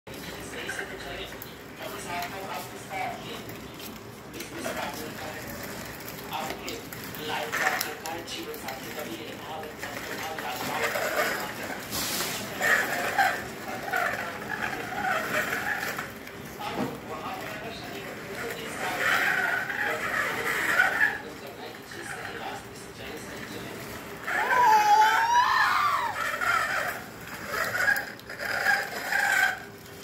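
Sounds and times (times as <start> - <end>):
baby walker wheels rattling: 0.1 - 30.0.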